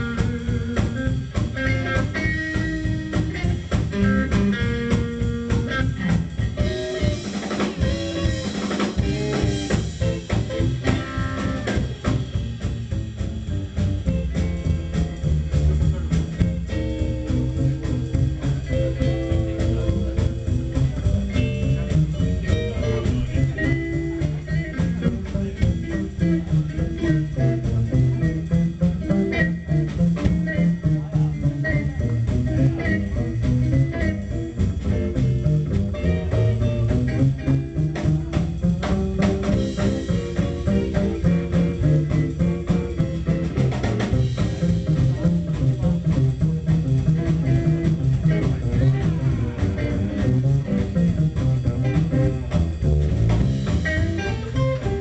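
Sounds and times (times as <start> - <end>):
drum kit: 0.0 - 55.0
electric guitar: 0.0 - 55.0
upright double bass: 0.0 - 55.0.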